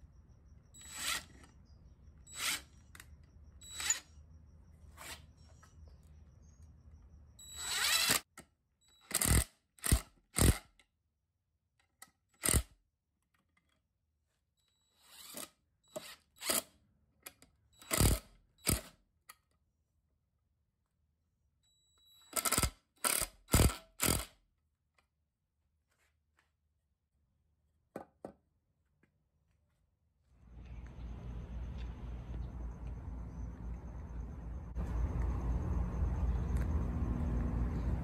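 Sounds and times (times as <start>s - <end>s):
cordless power driver whirring: 0.8s - 1.6s, 2.3s - 4.1s, 7.5s - 8.2s.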